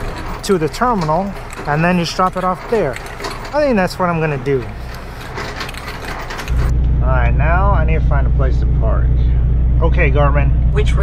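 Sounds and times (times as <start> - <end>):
light clicks and rattles: 0.0 - 6.7
diesel truck engine droning: 0.0 - 11.0.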